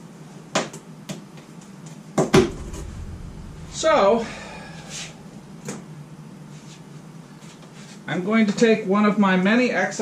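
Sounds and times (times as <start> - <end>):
loud knock: 2.4 - 6.0.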